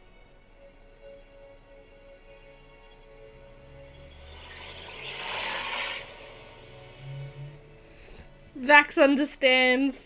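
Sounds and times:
rushing noise effect: 2.7 - 8.3
low rumble: 3.0 - 8.6.

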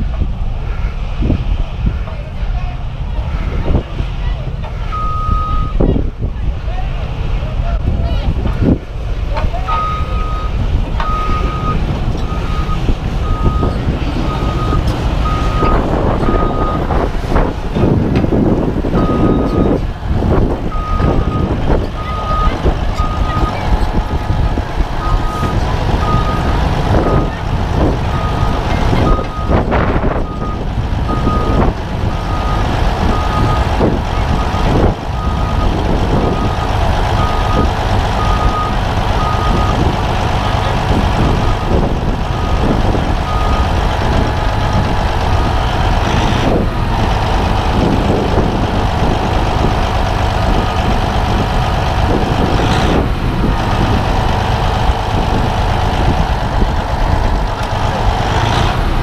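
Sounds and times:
diesel engine running: 0.0 - 59.0
reversing alarm beeping: 4.9 - 5.8, 9.7 - 16.9, 19.0 - 19.8, 20.7 - 24.2, 25.0 - 27.4, 28.1 - 39.9, 41.4 - 45.6.

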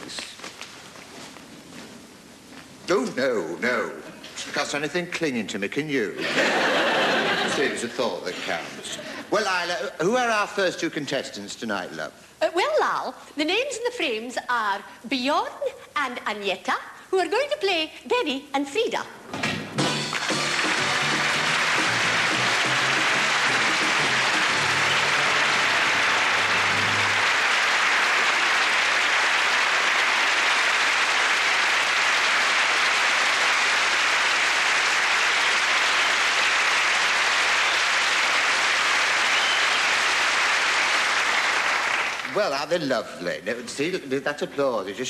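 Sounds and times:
music playing: 19.6 - 27.6
audience applauding: 19.8 - 42.6.

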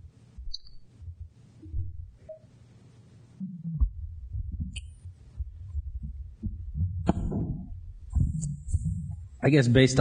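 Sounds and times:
microphone handling thumps: 0.4 - 2.4, 3.4 - 9.4.

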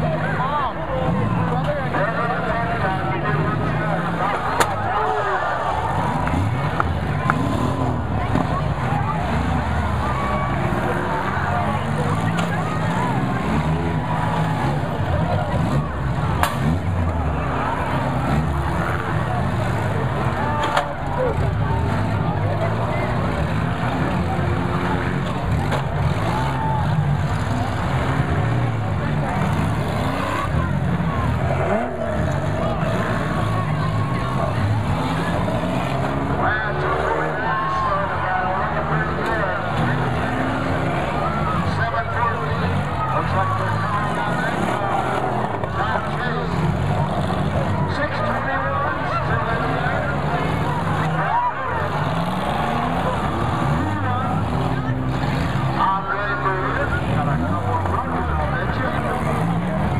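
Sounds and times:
car engines revving: 0.0 - 59.9
crowd voices: 0.0 - 59.9
cars crashing together: 0.2 - 59.9.

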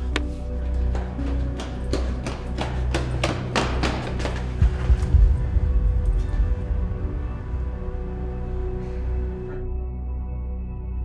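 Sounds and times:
footsteps running on concrete: 0.0 - 5.2
low droning film score: 0.0 - 11.0.

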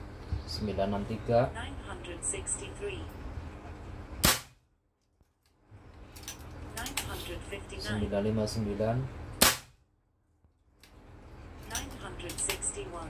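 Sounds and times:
air rifle shots: 4.2 - 4.6, 9.4 - 9.8.

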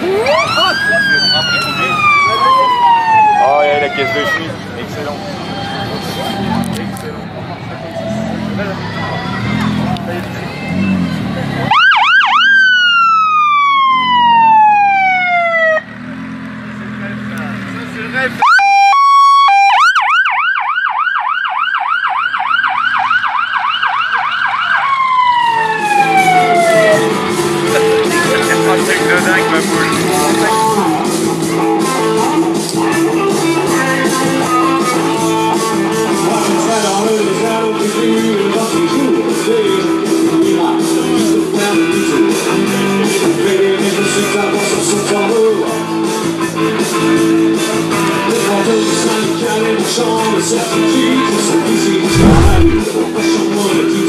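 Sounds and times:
police siren wail and yelp: 0.0 - 4.6, 11.7 - 15.9, 18.4 - 31.0
rock music with electric guitar: 25.8 - 54.0.

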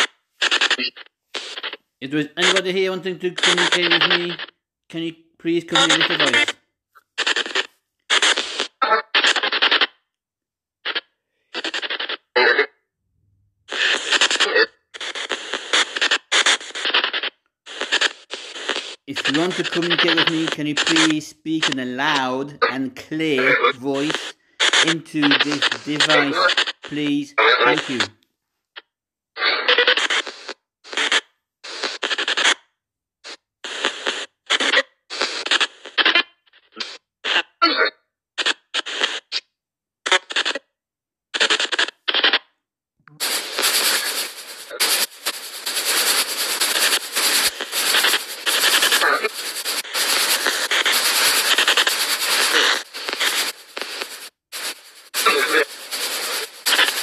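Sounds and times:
garbled radio fragments from phone: 0.0 - 10.0, 10.9 - 12.8, 13.7 - 28.2, 28.8 - 32.6, 33.2 - 39.5, 40.1 - 40.7, 41.4 - 42.5, 43.2 - 57.0.

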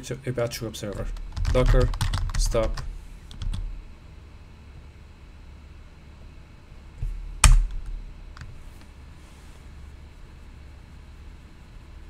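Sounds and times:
keyboard and mouse clicks: 0.9 - 3.7.

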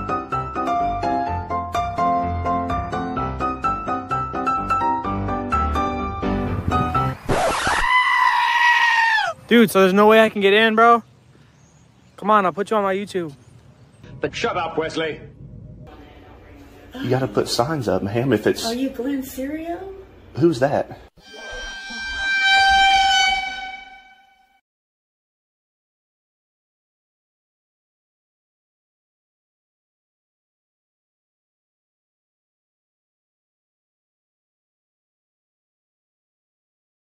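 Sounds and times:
high-pitched scream: 7.3 - 9.4, 21.2 - 24.6
horn-like tone: 21.2 - 24.6.

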